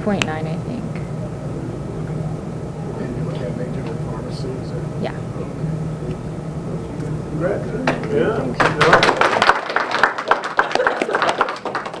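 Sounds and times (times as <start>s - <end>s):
people clapping: 7.8s - 12.0s.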